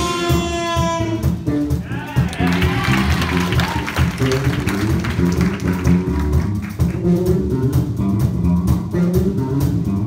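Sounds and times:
drum kit: 0.0 - 10.0
electric bass: 0.0 - 10.0
funk band playing: 0.0 - 10.0.

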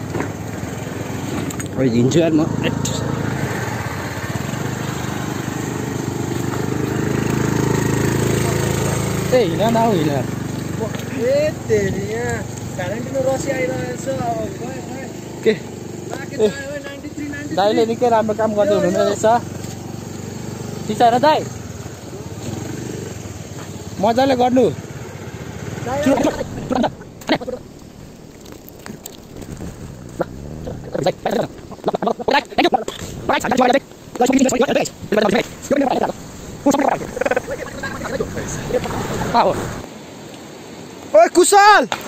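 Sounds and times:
motor scooter engine running: 2.2 - 27.8.

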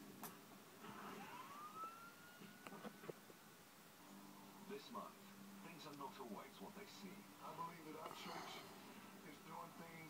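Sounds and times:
faint siren-like wail: 0.8 - 3.2.

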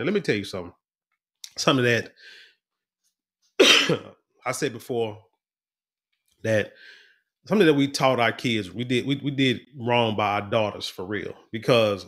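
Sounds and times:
man clearing throat: 3.6 - 4.2.

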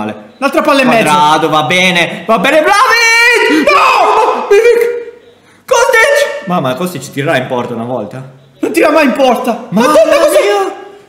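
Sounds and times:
men shouting excitedly: 2.4 - 5.0, 8.7 - 11.0.

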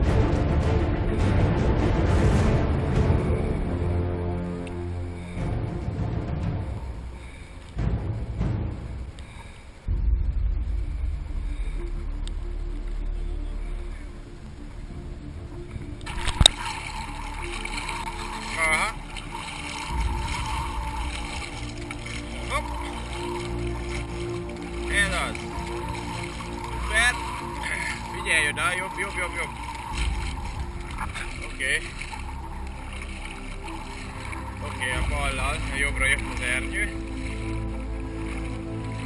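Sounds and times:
background music: 0.0 - 39.0
water noise: 0.0 - 39.0
boat engine running low: 2.3 - 39.0.

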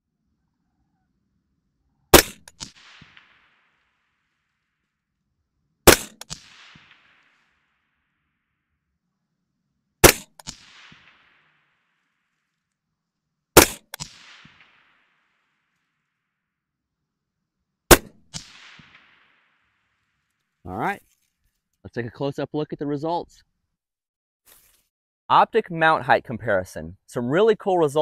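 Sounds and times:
suppressed rifle shots: 2.1 - 4.4, 5.8 - 7.9, 10.0 - 12.0, 13.6 - 15.5, 17.9 - 20.0.

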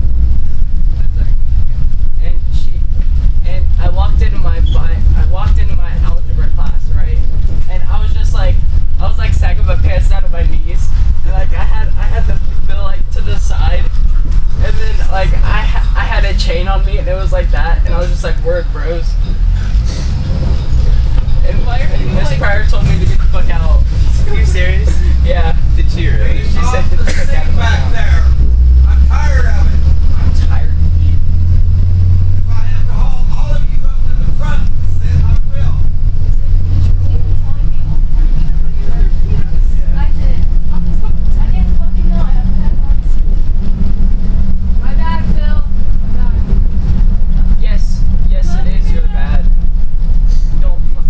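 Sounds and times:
bus engine and road rumble: 0.0 - 51.0
passengers chattering: 0.0 - 51.0.

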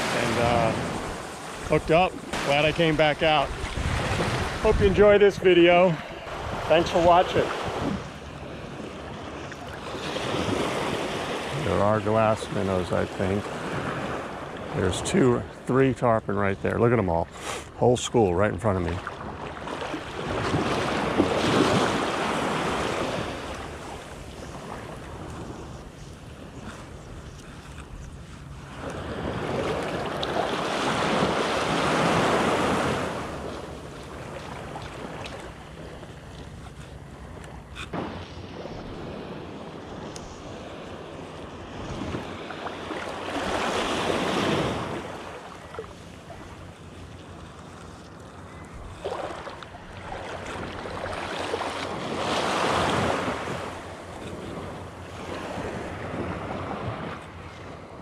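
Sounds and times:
sea surf washing: 0.0 - 58.0
wind on microphone: 3.4 - 11.7, 37.7 - 42.5.

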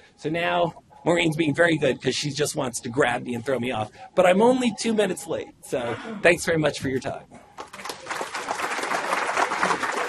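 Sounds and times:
audience applauding: 7.6 - 10.0.

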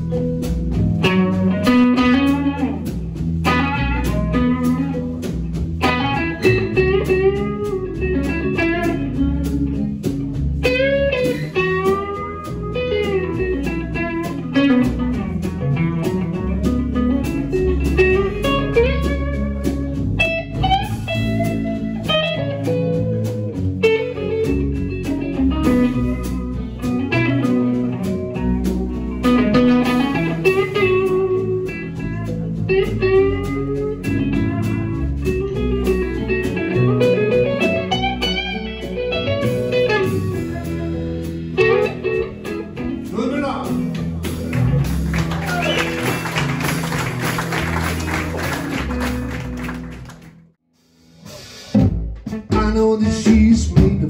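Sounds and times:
bass and drums: 0.0 - 54.0
blues guitar lead with bends: 0.0 - 54.0.

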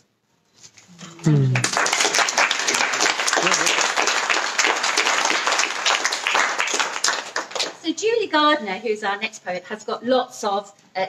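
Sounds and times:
audience applauding: 1.3 - 7.8.

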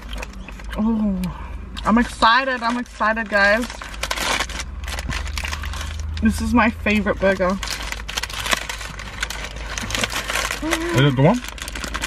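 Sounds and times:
paper wrapper crackling: 2.5 - 12.0.

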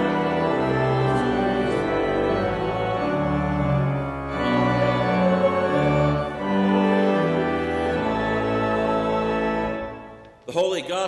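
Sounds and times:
organ playing sustained chords: 0.0 - 11.0.

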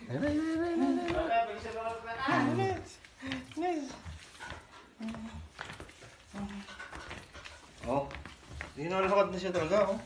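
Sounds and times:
faint footfalls: 0.0 - 10.0.

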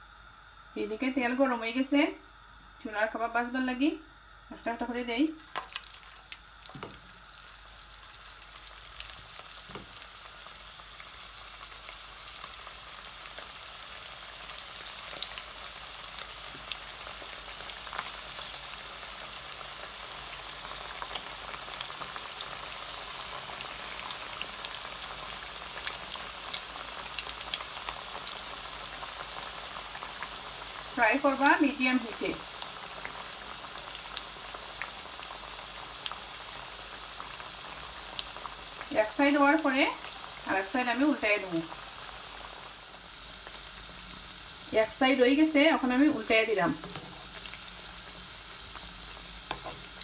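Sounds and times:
patties sizzling in hot oil: 0.0 - 50.0
oil crackling and popping: 5.4 - 31.5, 32.1 - 40.5, 46.7 - 50.0.

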